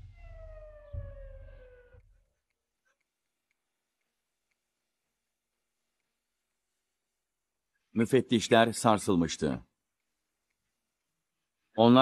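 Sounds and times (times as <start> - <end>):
slowly falling tone: 0.0 - 2.1.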